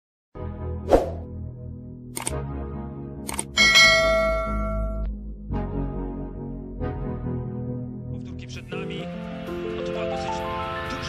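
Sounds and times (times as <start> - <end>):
short clicks: 2.2 - 2.4, 3.3 - 3.5
bell chime: 3.6 - 5.1.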